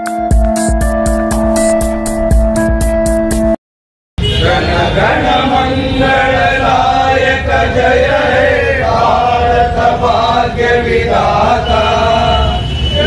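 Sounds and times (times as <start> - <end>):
men chanting in held tones: 4.3 - 13.0.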